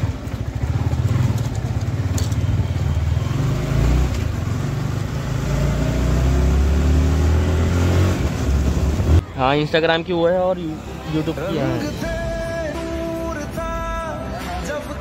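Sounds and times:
motorcycle engine running: 0.0 - 7.6.

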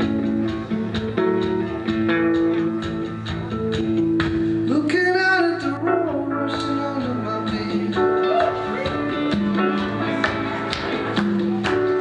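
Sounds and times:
bass guitar: 0.0 - 12.0
electric guitar: 0.0 - 12.0
live band music: 0.0 - 12.0.

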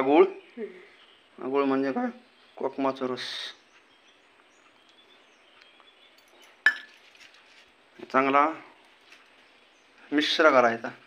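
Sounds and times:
faint handling noise: 3.7 - 10.0
metal container clinking steel bowl: 6.2 - 7.4.

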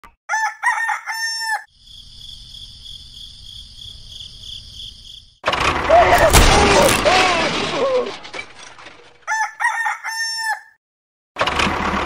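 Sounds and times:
rooster crowing: 0.3 - 1.7, 9.3 - 10.8
high-pitched insect trill: 1.7 - 5.4.

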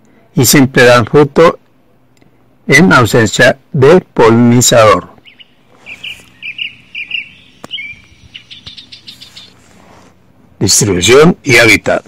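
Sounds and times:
small birds chirping: 5.0 - 10.2.

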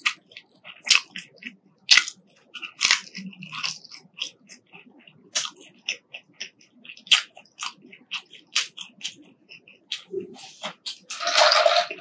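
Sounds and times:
person chewing crunchy fries: 0.0 - 12.0.

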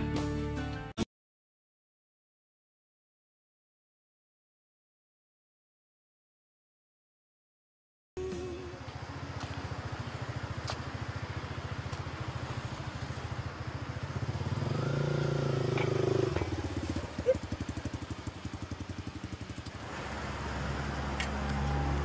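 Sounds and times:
motorcycle engine idling: 8.2 - 22.0.

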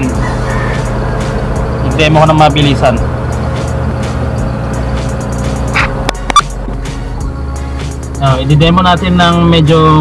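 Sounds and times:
background music: 0.0 - 10.0
car engine idling: 0.0 - 10.0.

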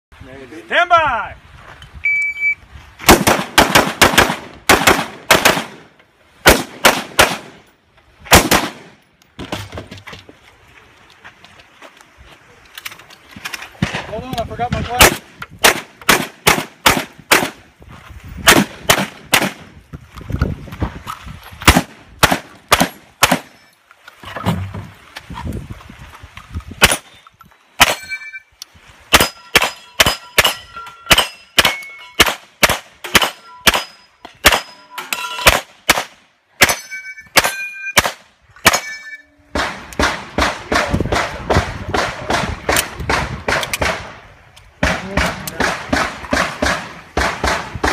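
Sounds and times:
gunshots: 3.1 - 7.6, 8.3 - 9.0, 13.8 - 17.6, 18.4 - 19.7, 21.6 - 23.6, 29.1 - 34.8, 35.4 - 36.8, 37.4 - 38.9, 39.5 - 44.2, 44.8 - 47.9
shotgun blasts: 3.1 - 7.6, 8.3 - 9.0, 14.8 - 17.6, 18.4 - 19.7, 21.7 - 23.6, 29.1 - 34.8, 35.4 - 36.8, 39.5 - 44.2, 44.8 - 47.9
steel targets ringing: 27.8 - 28.5, 29.1 - 32.3, 33.1 - 35.6, 36.6 - 38.0, 38.7 - 39.5.

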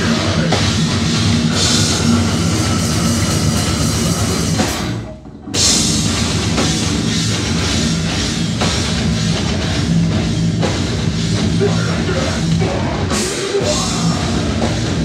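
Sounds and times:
heavy metal band playing: 0.0 - 15.0.

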